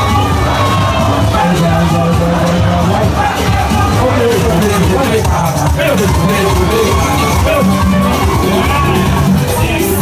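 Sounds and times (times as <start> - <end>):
loud music with steady beat: 0.0 - 10.0
repeating bass line: 0.0 - 10.0.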